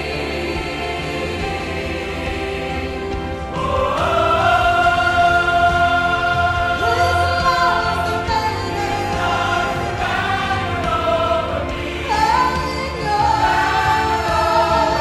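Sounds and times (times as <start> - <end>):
church choir singing: 0.0 - 15.0
woman singing gospel song: 6.6 - 10.0, 11.9 - 15.0.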